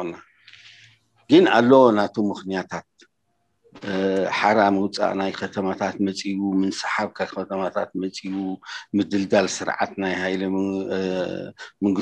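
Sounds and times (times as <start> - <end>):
man talking: 0.0 - 3.0, 3.8 - 12.0.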